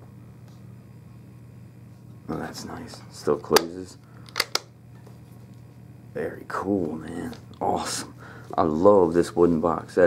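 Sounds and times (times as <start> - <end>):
box clasp clicks: 4.3 - 4.7.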